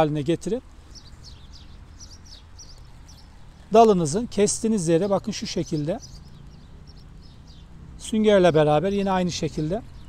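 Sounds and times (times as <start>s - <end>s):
songbirds chirping: 0.0s - 10.0s.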